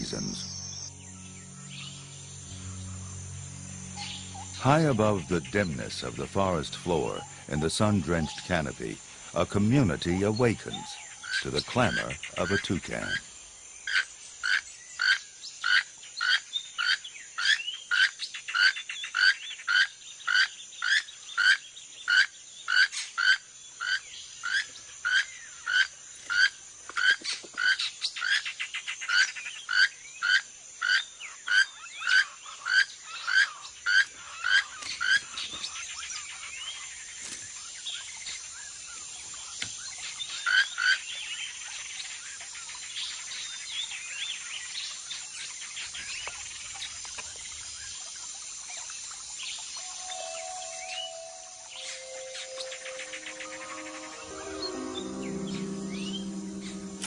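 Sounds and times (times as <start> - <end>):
toucan croaking call: 0.0 - 13.3
bird and insect calls: 0.0 - 57.0.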